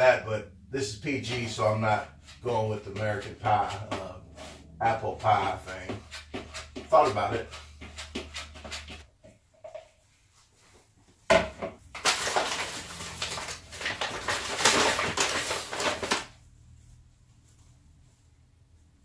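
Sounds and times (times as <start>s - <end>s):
paper bag crinkling: 12.0s - 16.4s.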